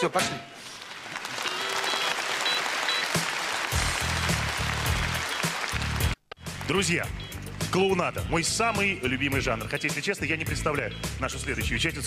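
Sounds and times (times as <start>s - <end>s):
audience applauding: 0.8s - 7.8s
show music: 1.2s - 12.0s.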